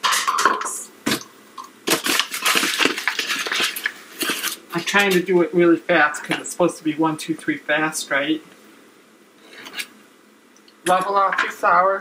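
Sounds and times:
paper bag crinkling and rustling: 1.8 - 5.2.

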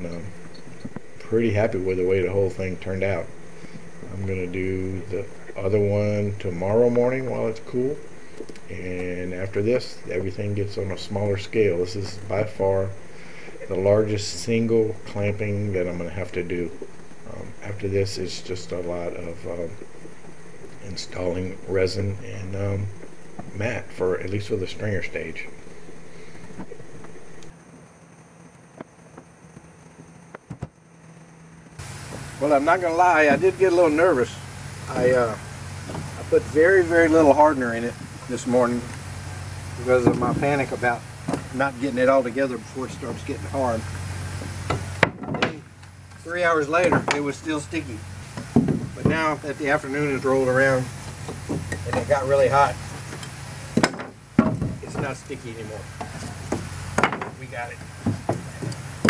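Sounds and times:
steady background hum: 0.0 - 59.0
sharp wooden knocks: 44.6 - 45.6, 48.4 - 49.2, 53.8 - 55.1, 56.0 - 57.4, 58.0 - 58.8.

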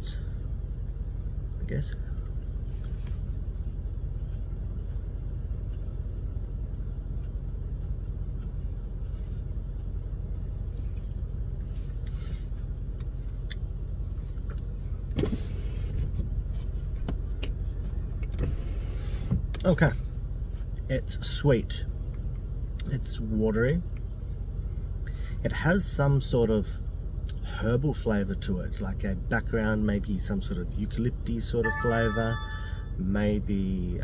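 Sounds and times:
car cabin hum: 0.0 - 25.0.

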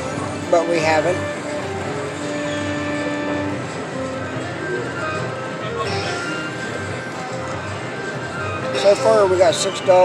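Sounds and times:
slot machine electronic music: 0.0 - 10.0.

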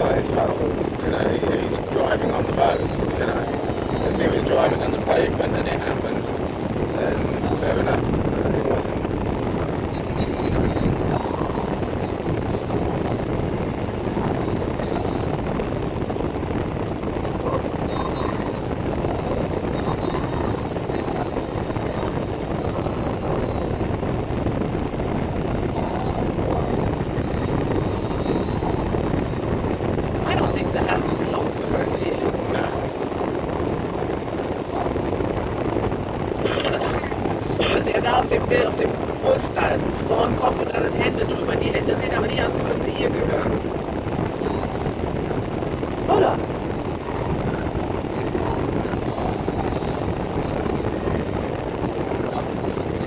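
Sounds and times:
car road and engine noise: 0.0 - 53.0.

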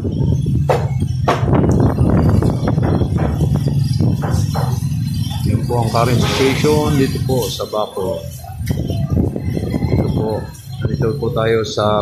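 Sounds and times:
wind rumbling on microphone: 0.0 - 7.6, 8.2 - 12.0
rain tapping on metal roof: 0.3 - 7.9.

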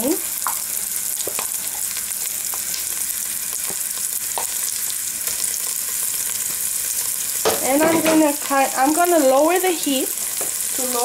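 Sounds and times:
paste sizzling in hot oil: 0.0 - 11.0.

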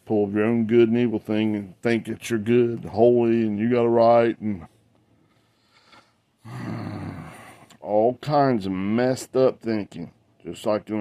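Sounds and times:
man grunting: 6.4 - 7.6.

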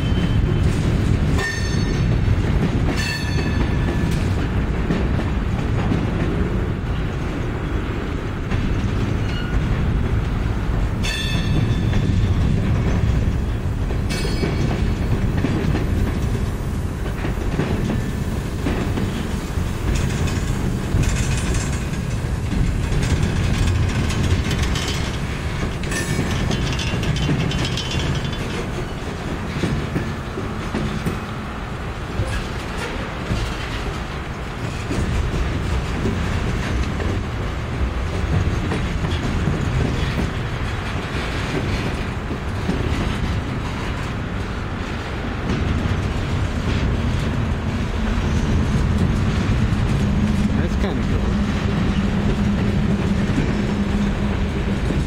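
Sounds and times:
steel wheels rumbling on rail: 0.0 - 55.0
wheels clacking over rail joints: 0.0 - 55.0.

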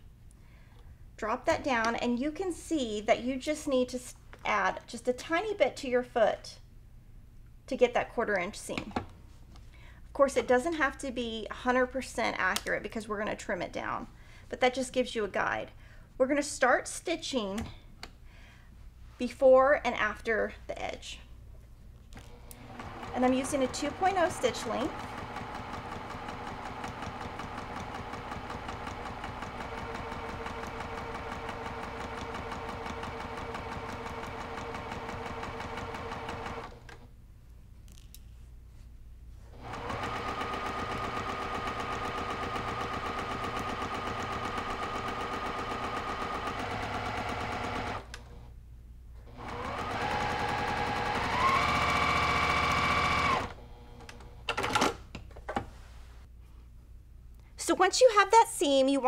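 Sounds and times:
electric sewing machine stitching: 22.3 - 37.0, 39.6 - 48.4, 49.3 - 54.3.

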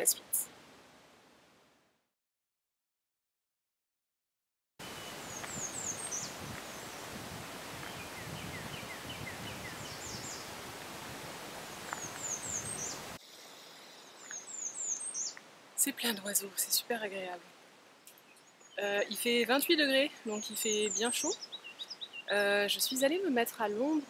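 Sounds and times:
songbirds singing: 4.8 - 10.5, 11.7 - 24.0.

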